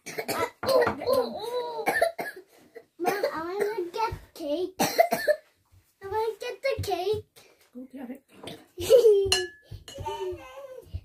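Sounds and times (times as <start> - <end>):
girl coughing: 0.0 - 3.9, 4.8 - 5.5
girl's wordless voice sounds: 2.9 - 4.8, 6.0 - 8.2, 9.2 - 11.0.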